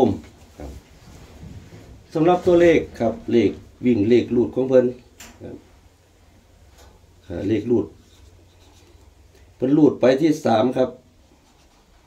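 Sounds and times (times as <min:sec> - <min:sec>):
man talking: 0:00.0 - 0:00.8, 0:02.1 - 0:05.7, 0:07.2 - 0:08.0, 0:09.6 - 0:11.0.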